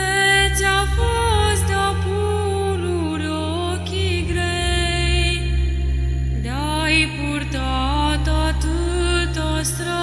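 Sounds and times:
steady low drone: 0.0 - 10.0.

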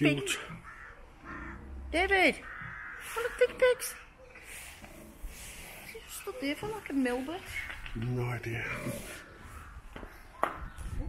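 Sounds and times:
loud animal call: 0.6 - 4.0.

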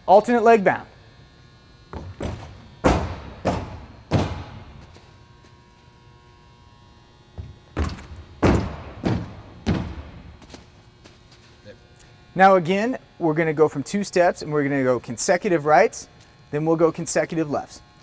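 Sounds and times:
heavy foot strikes on runway: 1.9 - 5.2, 7.3 - 11.2.

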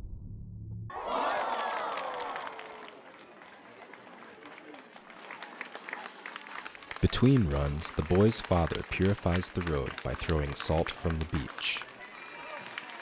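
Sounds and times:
crowd cheering: 0.9 - 13.0
scattered clapping: 1.2 - 13.0.

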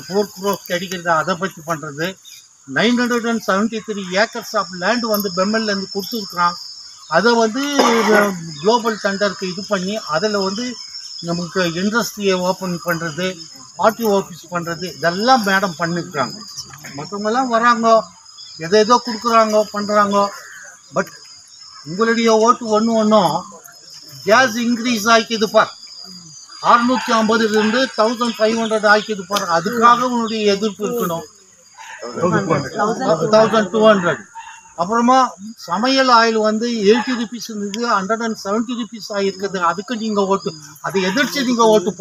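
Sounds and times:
man speaking: 0.0 - 21.1, 21.9 - 25.8, 26.6 - 31.3, 32.0 - 42.0
insect chirring: 0.0 - 42.0
man speaking in raised voice: 32.0 - 34.2.

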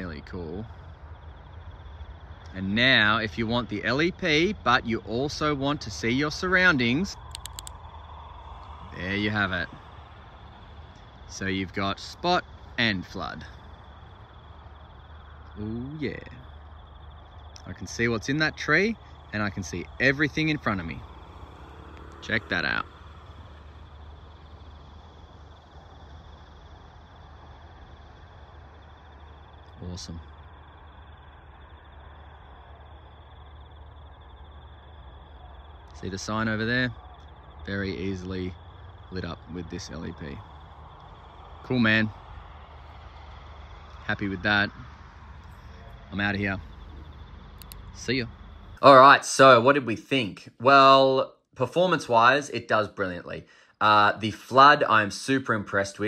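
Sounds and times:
low background rumble: 0.0 - 51.0
crickets chirping: 0.0 - 56.0
flashlight switch clicking: 7.2 - 7.8.

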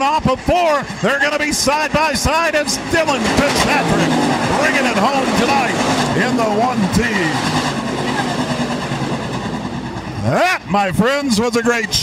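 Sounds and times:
race car engines droning: 0.0 - 12.0
passing car engine: 1.0 - 10.1.

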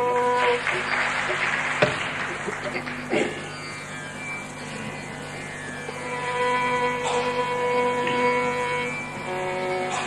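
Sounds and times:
long held melodic note: 0.0 - 1.0, 3.0 - 10.0
steady drone: 0.0 - 10.0.

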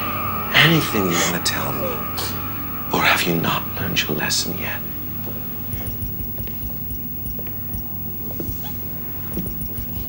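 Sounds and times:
low droning film soundtrack: 0.0 - 10.0
faint whimpering and whines: 4.9 - 10.0.

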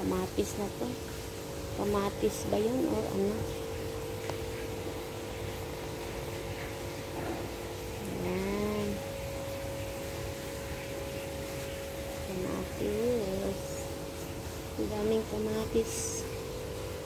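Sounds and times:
steady hum: 0.0 - 17.0.

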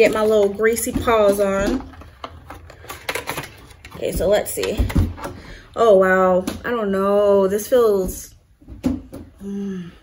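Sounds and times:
packaging clicks and rustles: 0.0 - 5.4.

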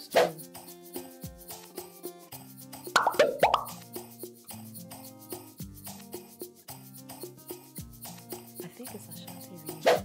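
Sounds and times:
background music with steady beat: 0.0 - 10.0
cartoon popping sound effects: 3.0 - 3.8.

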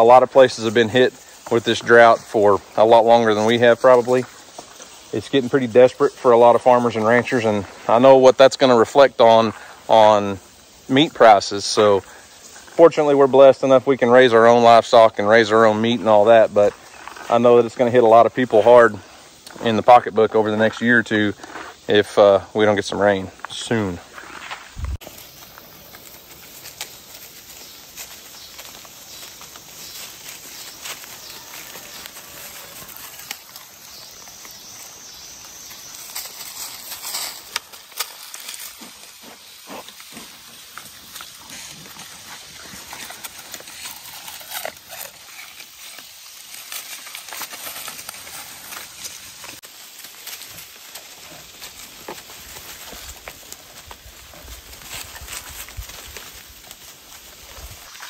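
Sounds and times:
steady high hiss: 0.0 - 58.0
hooves stepping through dry leaves: 22.8 - 58.0
leaves rustling and tearing: 24.1 - 58.0.

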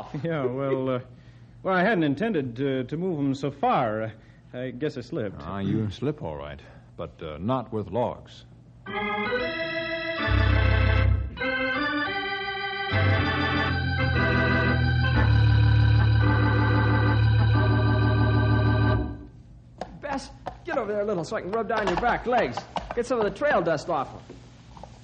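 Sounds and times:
organ chords with deep bass: 8.8 - 19.4.

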